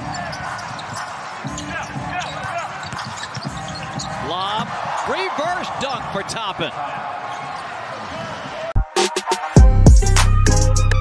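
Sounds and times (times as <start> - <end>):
basketball bouncing: 0.0 - 5.1
sneakers squeaking: 0.0 - 6.1, 6.7 - 8.7
arena crowd noise: 0.0 - 9.6
background music: 8.8 - 11.0.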